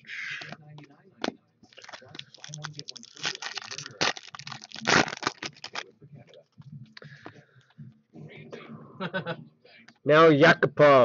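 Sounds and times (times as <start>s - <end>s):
foil wrapper crinkling and tearing: 1.7s - 5.9s.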